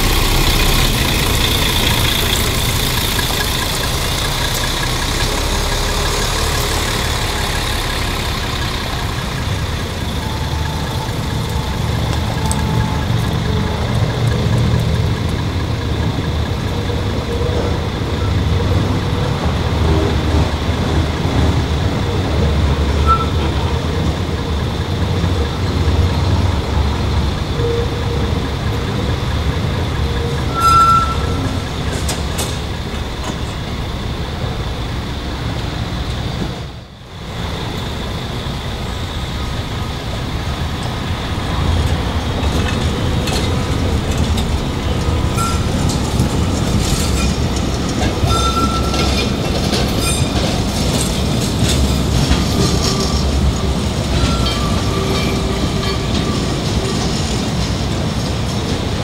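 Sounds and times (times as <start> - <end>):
diesel bus idling: 0.0 - 59.0
light-rail car rolling in: 0.0 - 59.0
short high squeal: 23.0 - 23.4, 30.4 - 31.6, 45.3 - 46.0.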